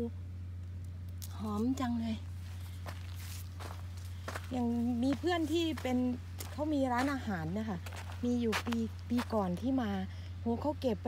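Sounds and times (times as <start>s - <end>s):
steady low hum: 0.0s - 11.0s
footsteps scuffing on dirt: 2.2s - 9.8s.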